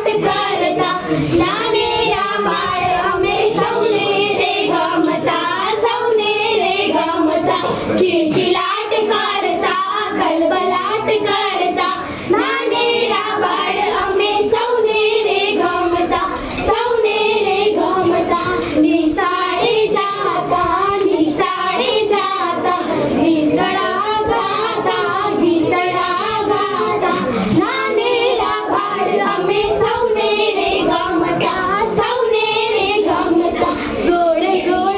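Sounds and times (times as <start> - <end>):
girls singing: 0.0 - 34.9.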